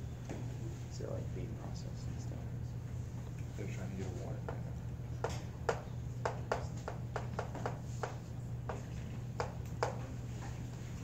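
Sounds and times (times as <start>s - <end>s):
chalk tapping on blackboard: 5.2s - 10.0s.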